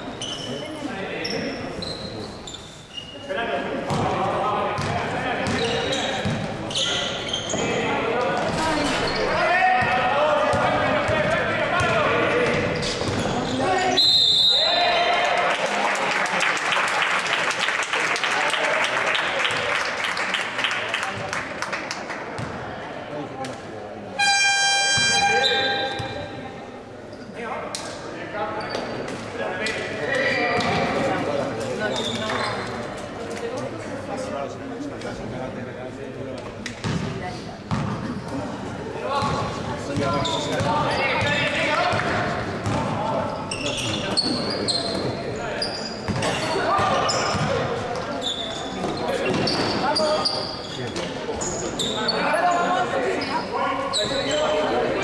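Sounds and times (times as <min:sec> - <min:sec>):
crowd noise: 0:00.0 - 0:55.0
basketball bouncing: 0:04.8 - 0:05.6, 0:06.2 - 0:06.5, 0:36.8 - 0:37.1, 0:37.7 - 0:38.0, 0:39.2 - 0:43.0, 0:46.1 - 0:47.7
referee's whistle: 0:13.9 - 0:14.8, 0:24.2 - 0:26.2
scoreboard electric horn: 0:24.2 - 0:25.5.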